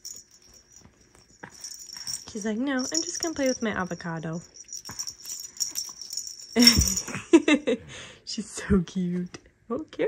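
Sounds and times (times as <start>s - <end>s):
plush rattle toy rattling: 0.0s - 7.2s.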